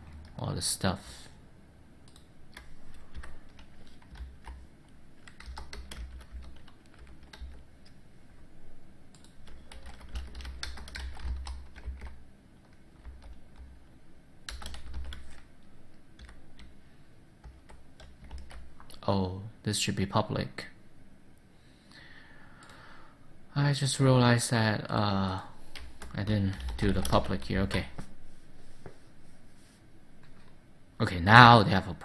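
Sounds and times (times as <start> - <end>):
typing on computer keyboard: 2.1 - 4.6, 5.2 - 8.0, 9.1 - 13.7, 14.5 - 15.5, 16.2 - 16.7, 17.4 - 19.0, 25.7 - 27.9.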